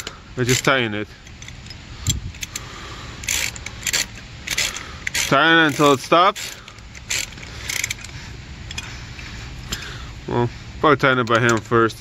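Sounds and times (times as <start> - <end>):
hand ratchet clicking and rattling: 0.0 - 8.9.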